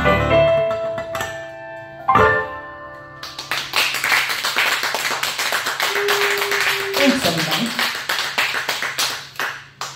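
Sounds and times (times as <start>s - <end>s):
audience applauding: 3.2s - 9.9s.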